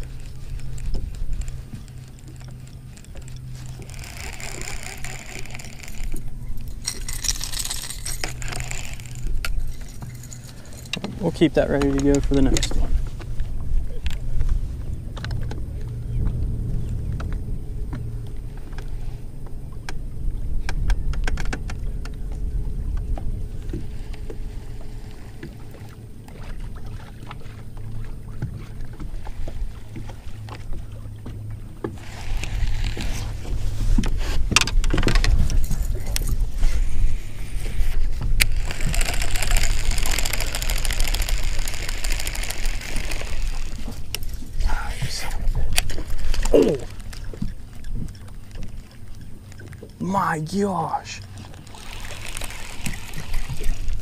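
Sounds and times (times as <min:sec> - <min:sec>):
wind rumbling on microphone: 0:00.0 - 0:50.1, 0:51.2 - 0:54.0
choppy water around a boat: 0:00.0 - 0:54.0
fishing reel clicks: 0:00.1 - 0:12.8, 0:32.0 - 0:33.4, 0:38.4 - 0:44.4, 0:51.4 - 0:54.0.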